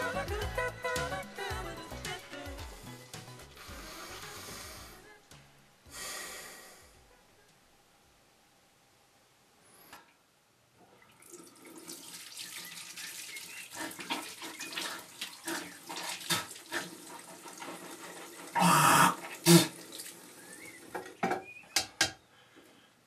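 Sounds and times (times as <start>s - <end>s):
tap water running into sink: 11.0s - 22.0s.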